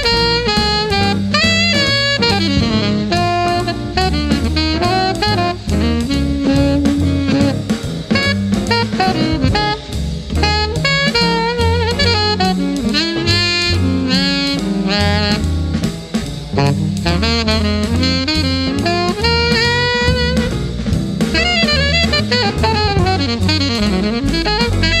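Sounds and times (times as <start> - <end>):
alto saxophone solo: 0.0 - 25.0
double bass: 0.0 - 25.0
drum kit: 0.0 - 25.0.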